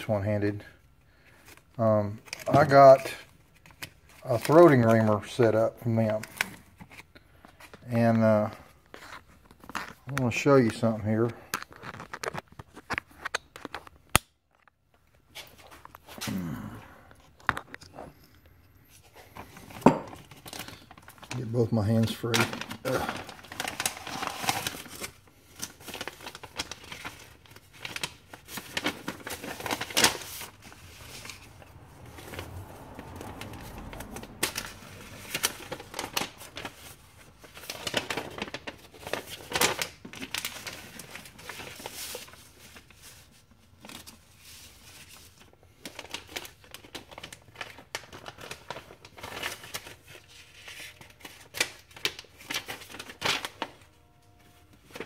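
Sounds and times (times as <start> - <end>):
plastic bag and paper crinkling: 0.0 - 16.5, 19.0 - 55.0.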